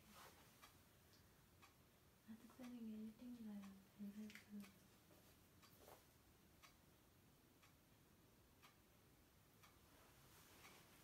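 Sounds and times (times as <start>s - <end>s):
faint ticks: 0.0s - 6.8s.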